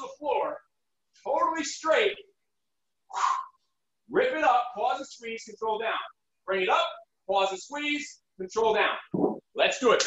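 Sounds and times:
man speaking: 0.0 - 2.3
breathy exhale: 3.1 - 3.6.

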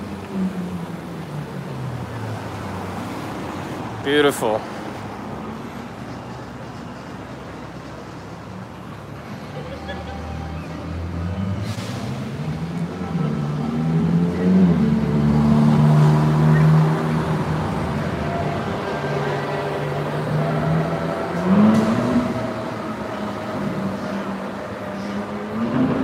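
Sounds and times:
vehicle engine revving: 11.0 - 26.0.

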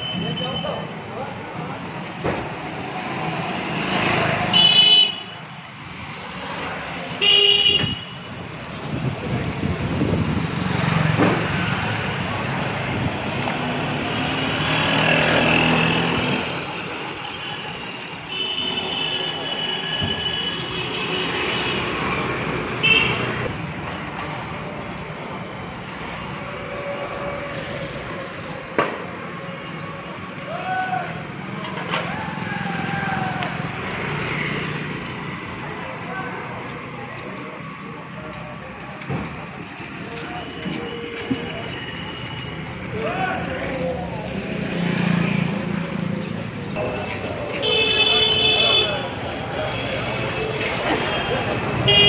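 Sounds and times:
street traffic din: 0.0 - 52.0
vehicle horns honking: 4.5 - 5.4, 7.2 - 8.3, 22.8 - 23.4, 46.8 - 49.2, 51.0 - 52.0.

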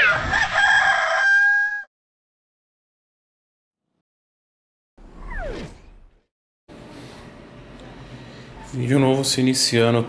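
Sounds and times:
rooster crowing: 0.0 - 1.9.

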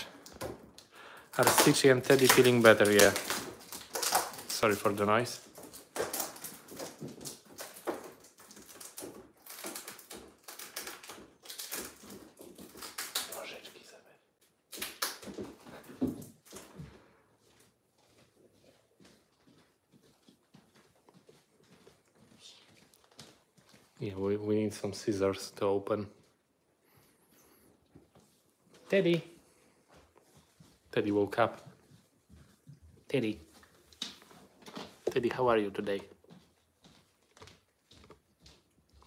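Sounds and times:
packaging rustling and clicking: 0.1 - 13.4.

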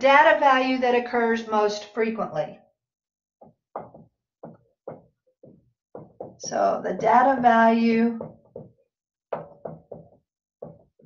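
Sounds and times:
marker writing on whiteboard: 3.4 - 7.6, 8.2 - 11.0.

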